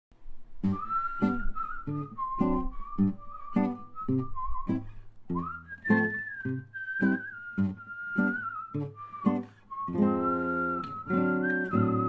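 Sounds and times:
man whistling a long note: 0.6s - 12.0s
strummed classical guitar chords: 3.5s - 12.0s.

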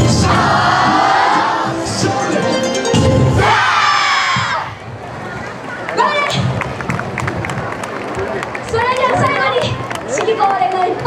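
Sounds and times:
dance music: 0.0s - 4.1s.

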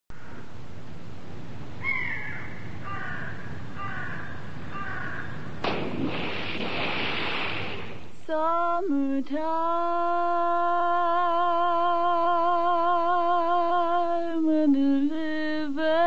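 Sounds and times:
bird calling: 1.7s - 5.7s
hiss of noise: 5.6s - 8.4s.

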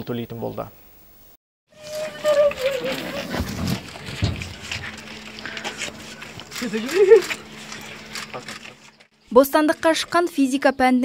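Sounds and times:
dull thumps: 2.0s - 5.8s
people crying: 5.3s - 7.8s.

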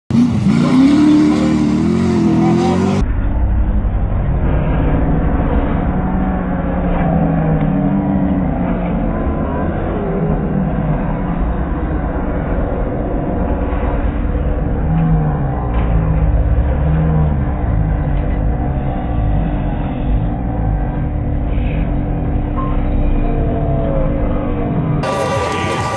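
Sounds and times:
car engines revving: 0.1s - 25.9s
steady low rumble: 0.1s - 25.9s.

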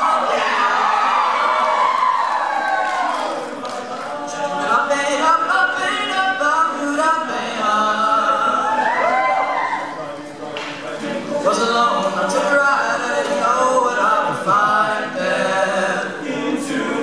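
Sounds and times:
male a cappella group singing: 3.4s - 17.0s.

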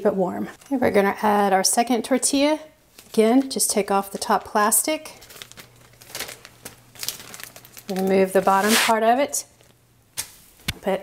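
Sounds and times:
plastic bag crinkling: 5.1s - 9.8s.

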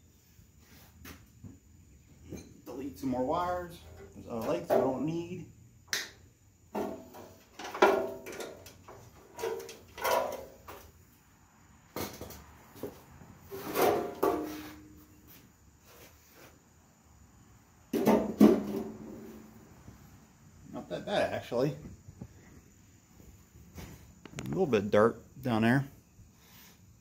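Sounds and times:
clunks and knocks of steel fender: 6.7s - 11.0s, 11.9s - 14.9s, 17.9s - 19.4s.

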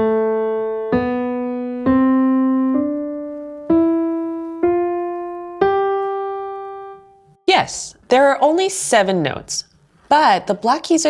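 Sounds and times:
piano notes rising: 0.0s - 7.5s.

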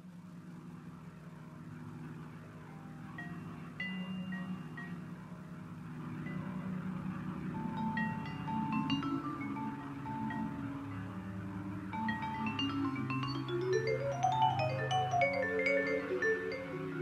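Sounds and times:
low sustained drone: 0.0s - 17.0s
vibraphone notes: 3.1s - 5.4s, 6.2s - 17.0s.

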